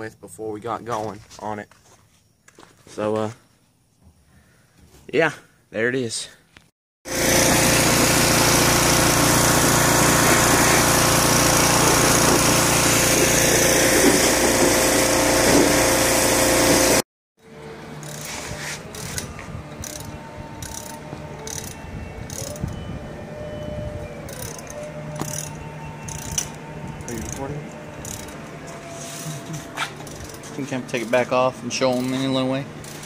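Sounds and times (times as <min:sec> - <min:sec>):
pressure washer spraying: 0:07.1 - 0:17.0.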